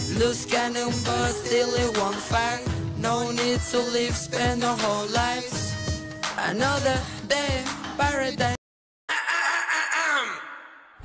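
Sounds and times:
music: 0:00.0 - 0:08.6.

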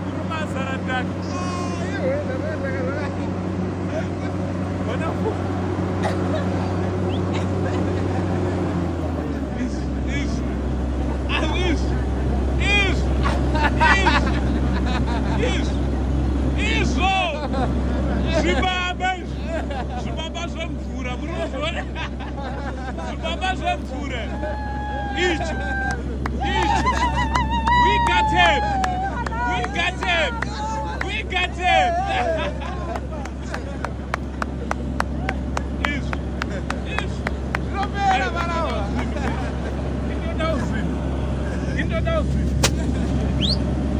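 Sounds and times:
excited shouting voices: 0:00.0 - 0:42.2
people laughing: 0:00.0 - 0:43.7
drilling rig engine drone: 0:00.0 - 0:43.9
people shouting excitedly: 0:24.1 - 0:33.0
sharp hand claps: 0:32.9 - 0:37.7.

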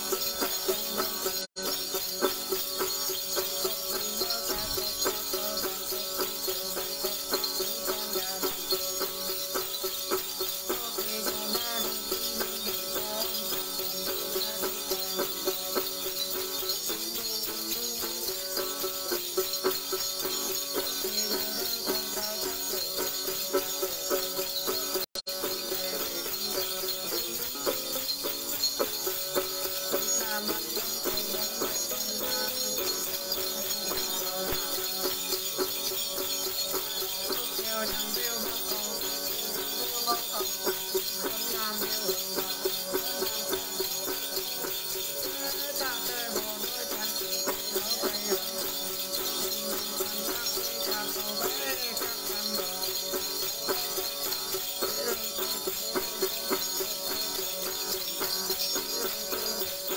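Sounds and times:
small bells jingling: 0:00.0 - 0:59.9.

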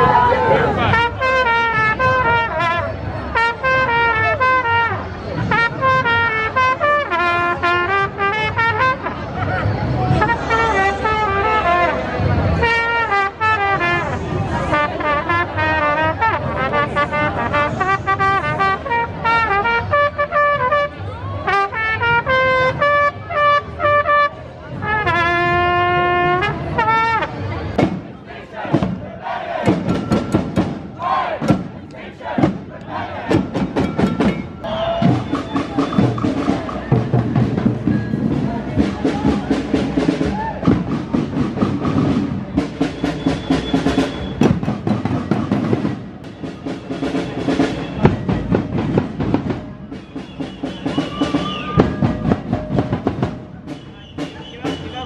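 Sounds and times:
brass instruments playing a tune: 0:00.0 - 0:55.0
crowd noise: 0:00.0 - 0:55.0
sharp rapid drum beats: 0:33.3 - 0:55.0.

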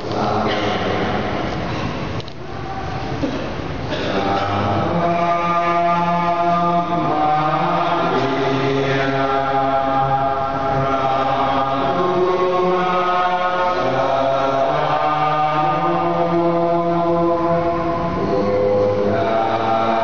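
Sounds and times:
hymn singing in church: 0:00.0 - 0:20.0.

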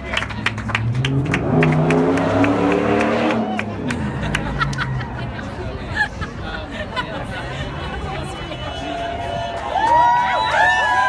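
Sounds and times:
hand claps: 0:00.0 - 0:04.9
vehicle engine accelerating: 0:00.0 - 0:05.7.

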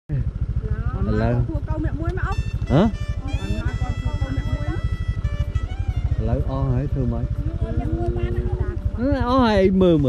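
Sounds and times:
people's voices: 0:00.1 - 0:10.0
small motorcycle engine running: 0:00.1 - 0:10.0.

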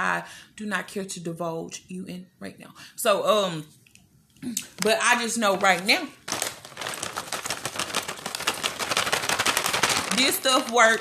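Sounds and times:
plastic packet crinkling: 0:04.6 - 0:11.0.

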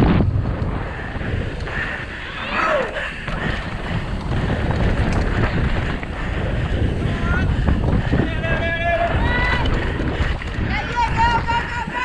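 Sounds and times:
bike rumbling and rattling: 0:00.0 - 0:12.0
wind buffeting microphone: 0:00.0 - 0:12.0
spectators shouting: 0:08.2 - 0:10.0, 0:10.6 - 0:12.0.

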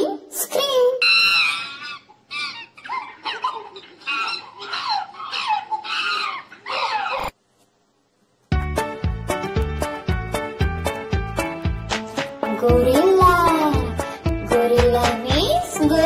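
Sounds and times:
chimpanzee screaming: 0:01.0 - 0:07.4.

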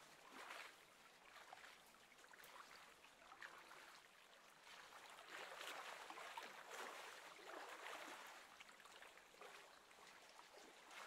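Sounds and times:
soft water splashes: 0:00.0 - 0:11.0.

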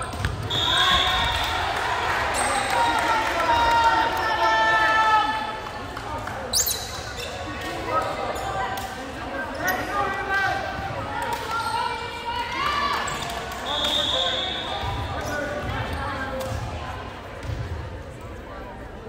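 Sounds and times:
people talking and calling out: 0:00.0 - 0:19.0
referee's whistle: 0:00.4 - 0:01.5, 0:13.6 - 0:15.0.

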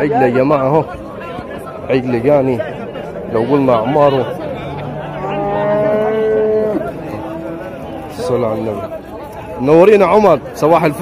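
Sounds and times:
calf mooing: 0:05.0 - 0:07.9.

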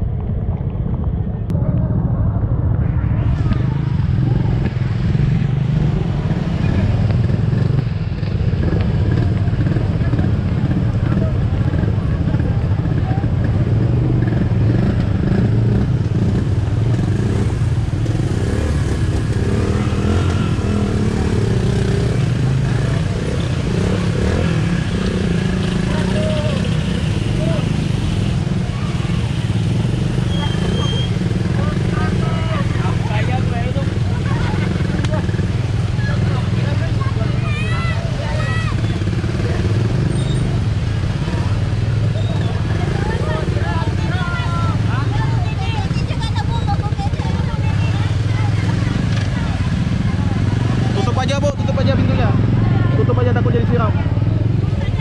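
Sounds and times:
motorcycle running: 0:00.0 - 0:55.0
people's voices: 0:00.0 - 0:55.0.

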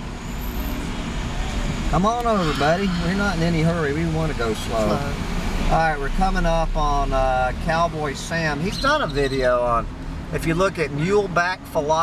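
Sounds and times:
engine rumble: 0:00.0 - 0:12.0
road noise: 0:00.0 - 0:12.0.

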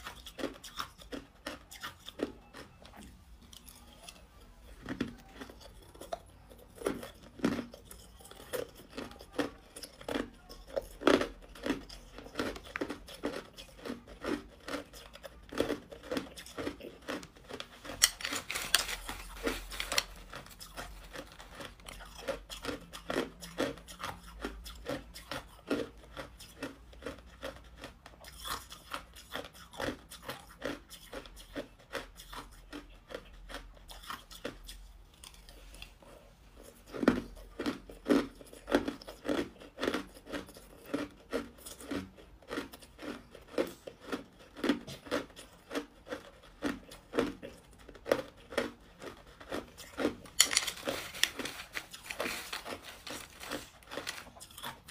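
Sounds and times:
person chewing ice crunching: 0:00.0 - 0:54.9.

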